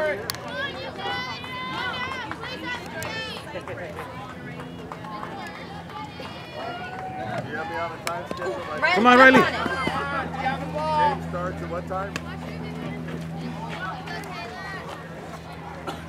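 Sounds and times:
voices chattering and calling out: 0.0s - 16.0s.

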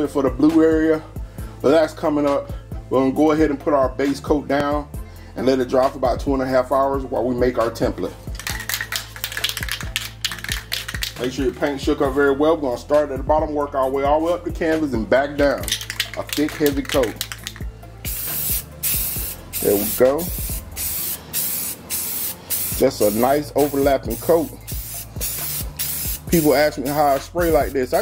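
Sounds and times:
background beat: 5.8s - 12.4s, 13.1s - 28.0s
spray can ball rattling: 8.3s - 11.4s, 15.6s - 28.0s.

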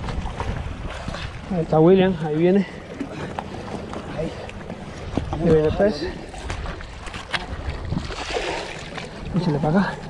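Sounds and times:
wind buffeting microphone: 0.0s - 2.9s, 3.5s - 9.6s
waves lapping against rocks: 0.0s - 10.0s.

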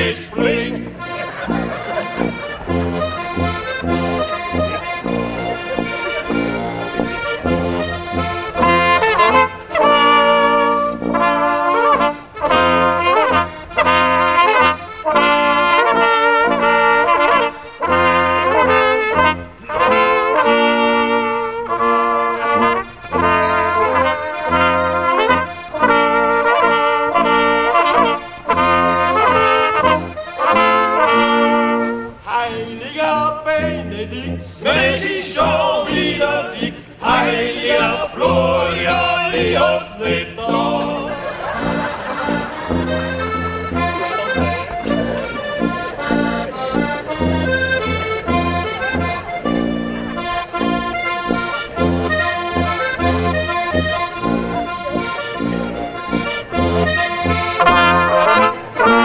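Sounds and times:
flugelhorn and trumpets melody: 0.0s - 59.0s
tuba bass notes: 0.0s - 59.0s.

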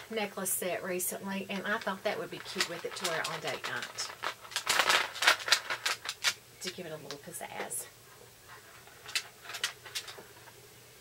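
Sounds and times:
jewelry card rustling and clicking: 1.5s - 7.2s, 8.5s - 10.5s
beads rattling: 1.5s - 7.7s, 8.5s - 10.3s.

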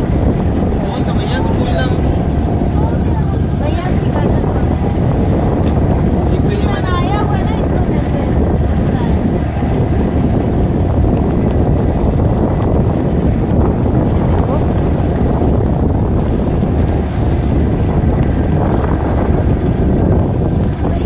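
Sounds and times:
motorboat rumbling: 0.0s - 21.0s
wind buffeting microphone: 0.0s - 21.0s.

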